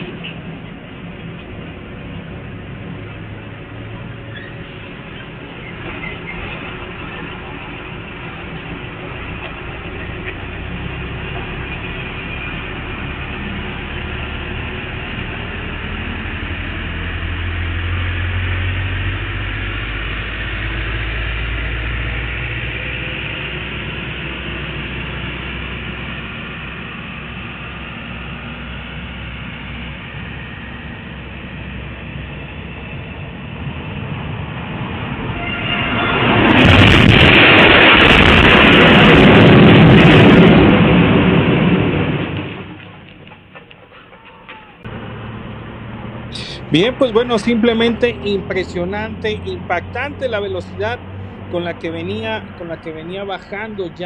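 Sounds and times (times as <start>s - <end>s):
truck crashing: 0.0s - 23.5s, 34.7s - 54.0s
traffic engines rumbling: 0.0s - 54.0s.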